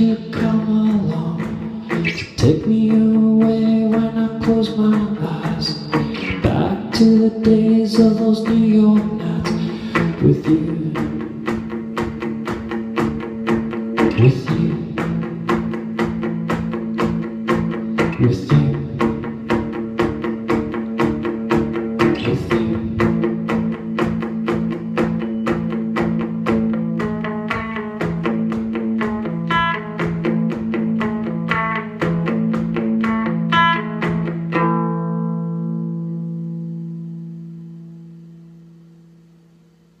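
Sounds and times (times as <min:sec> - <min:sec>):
electric guitar strumming: 0:00.0 - 0:40.0.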